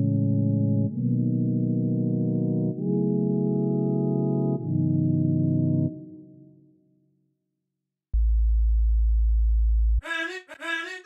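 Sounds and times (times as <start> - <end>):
deep sub-bass synth tone: 8.2 - 10.0.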